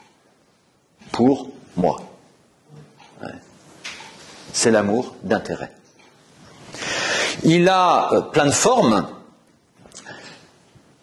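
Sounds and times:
short breath: 6.7 - 7.4.

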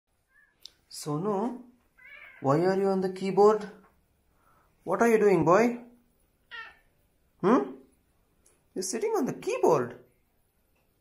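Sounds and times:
cat meowing: 2.0 - 2.6, 6.4 - 6.9.

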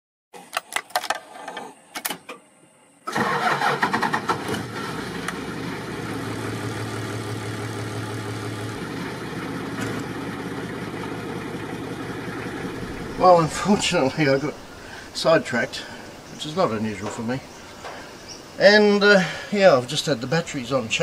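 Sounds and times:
diesel engine starting and idling: 3.1 - 16.3.

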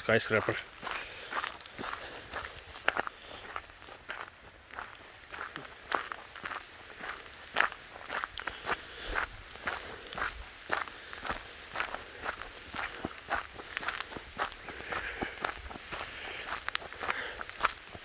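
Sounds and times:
footsteps crunching on gravel: 0.0 - 18.0.

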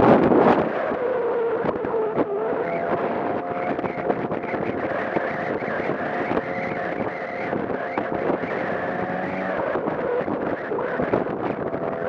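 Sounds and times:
wind noise on microphone: 0.0 - 12.0
scooter engine cruising: 1.0 - 12.0.

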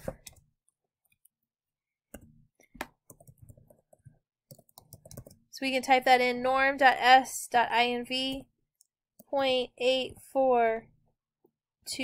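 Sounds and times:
typing on computer keyboard: 3.1 - 5.4.

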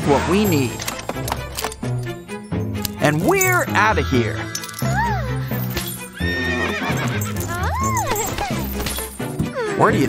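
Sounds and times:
background music: 0.0 - 10.0
horse whinny: 4.0 - 8.3.

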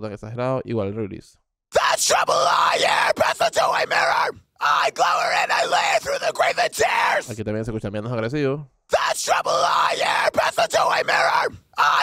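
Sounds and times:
screamed metal vocals: 1.7 - 7.4, 8.9 - 12.0.

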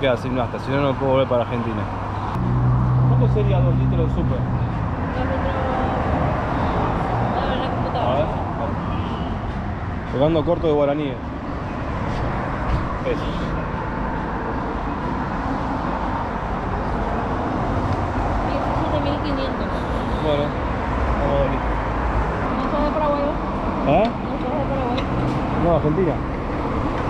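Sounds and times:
traffic noise hum: 0.0 - 27.0.

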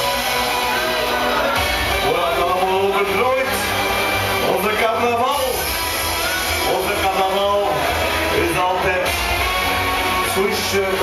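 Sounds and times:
backing track with steady beat: 0.0 - 11.0.

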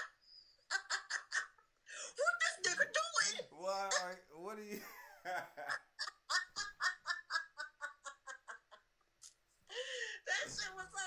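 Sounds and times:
people laughing hard: 0.0 - 1.8, 4.8 - 9.0.

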